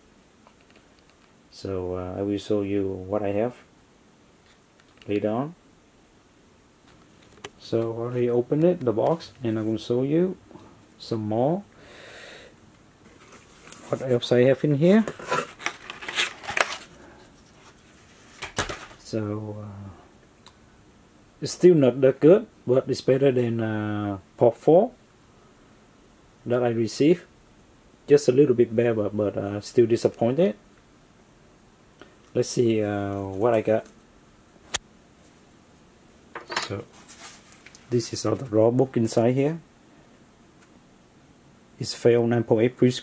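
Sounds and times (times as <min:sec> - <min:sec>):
man speaking: 0:07.6 - 0:10.4, 0:13.9 - 0:15.1, 0:19.0 - 0:20.0, 0:32.4 - 0:33.9, 0:37.9 - 0:39.7, 0:41.8 - 0:43.0.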